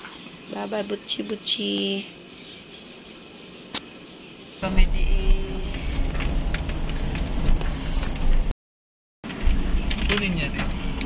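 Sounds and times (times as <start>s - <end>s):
person's voice: 4.6s - 6.0s
van driving rumble: 4.6s - 8.5s, 9.2s - 11.0s.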